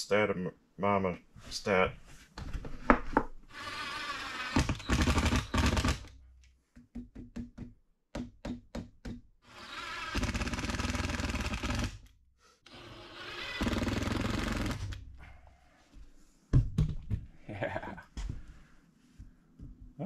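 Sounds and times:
cordless drill driving screws: 3.5 - 6.1, 9.5 - 11.9, 12.7 - 15.0.

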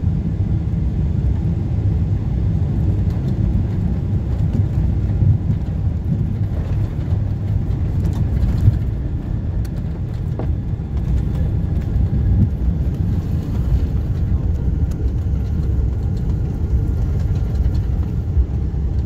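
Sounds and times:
jet engines rumbling: 0.0 - 19.0
faint ticks and rattles: 2.9 - 19.0.

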